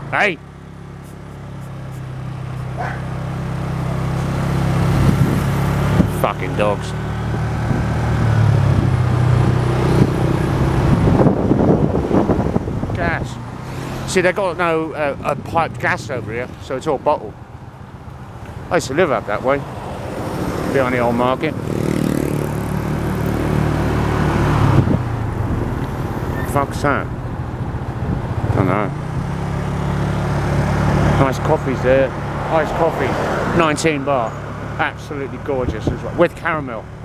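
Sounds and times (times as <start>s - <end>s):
motorbike engine running: 0.0s - 12.8s, 20.4s - 24.0s
road noise: 0.0s - 37.0s
vehicle engine running: 0.0s - 37.0s
wind buffeting microphone: 3.7s - 6.4s, 7.0s - 13.8s, 24.6s - 26.5s, 27.1s - 29.4s.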